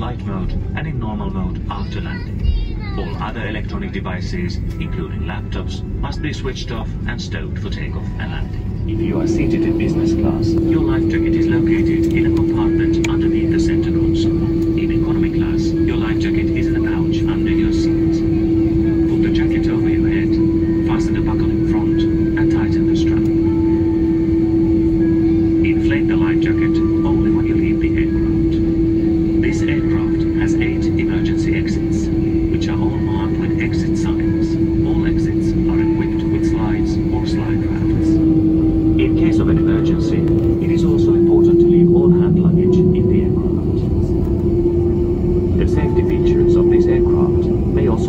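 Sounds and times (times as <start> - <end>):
aircraft cabin drone and whine: 0.0 - 48.0.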